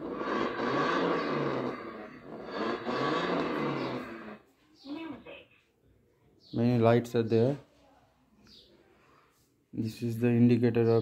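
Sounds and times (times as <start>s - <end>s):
recorded motorbike engine revving: 0.0s - 4.5s.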